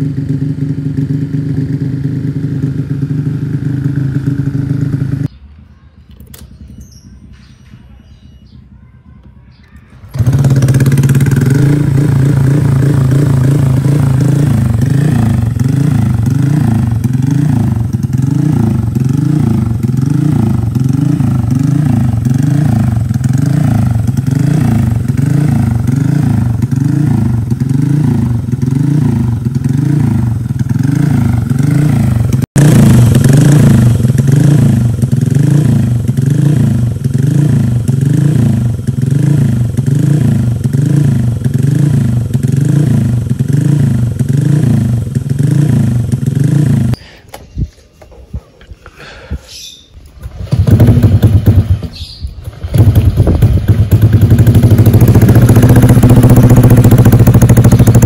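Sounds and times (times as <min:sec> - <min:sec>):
scooter engine idling: 0:00.0 - 0:05.4, 0:09.3 - 0:47.0, 0:50.3 - 0:58.0.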